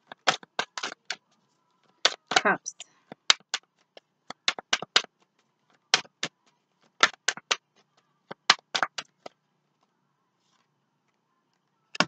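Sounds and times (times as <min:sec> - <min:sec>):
cards being shuffled: 0:00.1 - 0:10.7.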